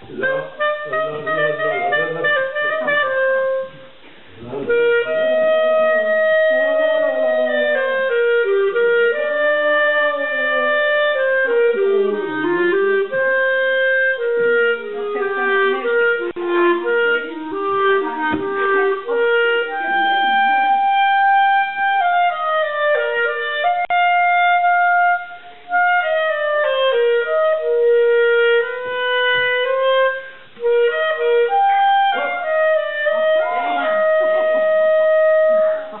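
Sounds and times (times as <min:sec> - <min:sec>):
clarinet playing quick melody: 0:00.0 - 0:36.0.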